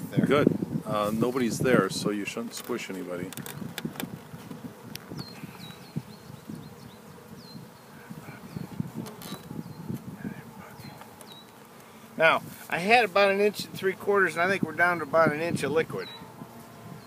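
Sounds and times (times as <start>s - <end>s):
honeybees buzzing: 0.0s - 17.0s.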